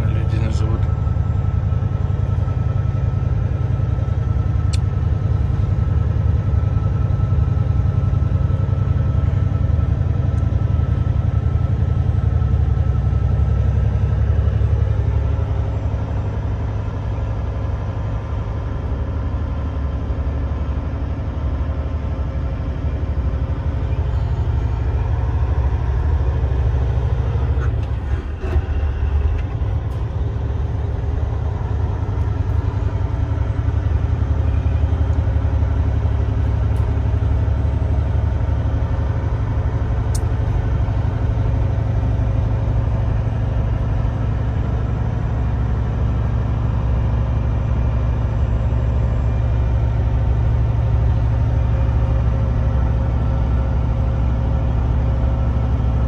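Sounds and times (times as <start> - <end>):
road noise: 0.0 - 56.0
truck diesel engine drone: 0.0 - 56.0.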